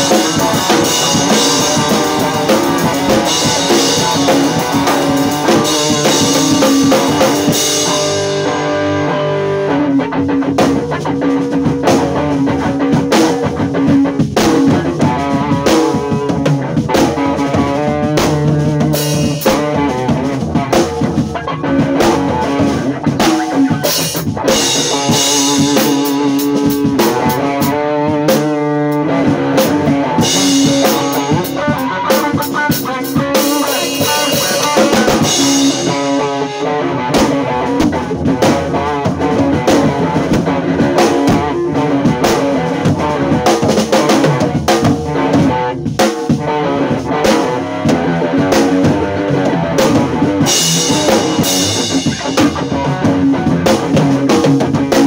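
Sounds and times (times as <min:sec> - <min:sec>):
drum kit groove: 0:00.0 - 0:55.0
electric guitar: 0:00.0 - 0:55.0.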